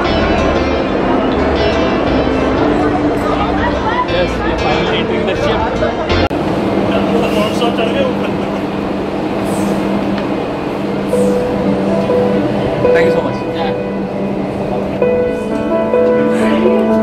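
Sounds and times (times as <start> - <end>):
background music: 0.0 - 8.1, 10.4 - 17.0
ship machinery humming: 0.0 - 17.0.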